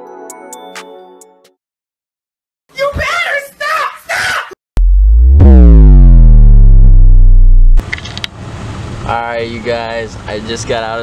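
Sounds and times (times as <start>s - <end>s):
synth bass hit sliding down: 4.8s - 7.8s
low outdoor rumble: 4.8s - 8.0s.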